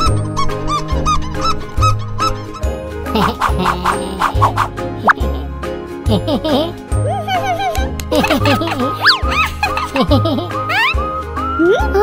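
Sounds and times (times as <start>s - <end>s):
upbeat children's music: 2.8s - 12.0s.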